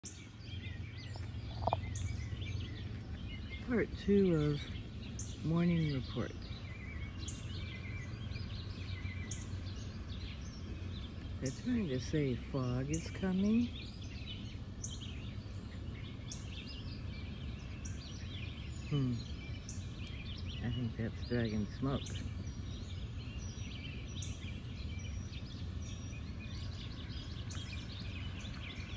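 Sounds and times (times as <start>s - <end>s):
low background rumble: 0.0s - 28.9s
songbirds chirping: 0.0s - 28.9s.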